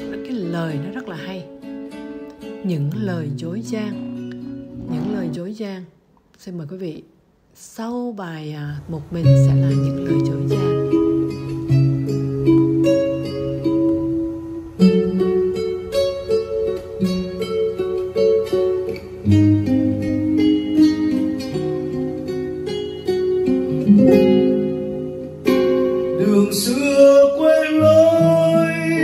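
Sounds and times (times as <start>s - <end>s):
fingerstyle acoustic guitar: 0.0s - 5.5s, 9.0s - 29.0s
man singing: 26.1s - 29.0s.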